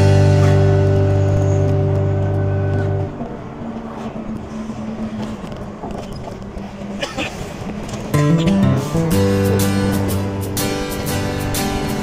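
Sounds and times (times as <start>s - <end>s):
music track: 0.0s - 3.6s, 8.1s - 12.0s
vehicle road and engine noise: 0.0s - 12.0s.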